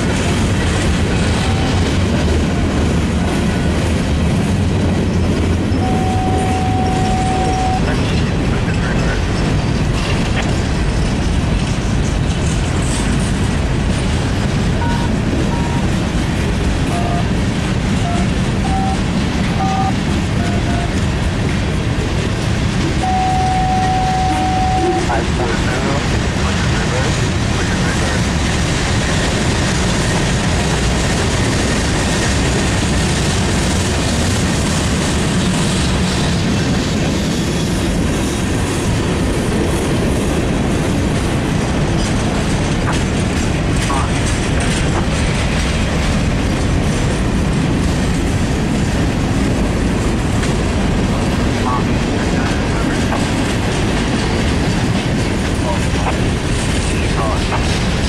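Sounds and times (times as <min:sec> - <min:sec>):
steel wheels rumbling on rails: 0:00.0 - 0:58.0
wheels clattering over rail joints: 0:25.4 - 0:58.0.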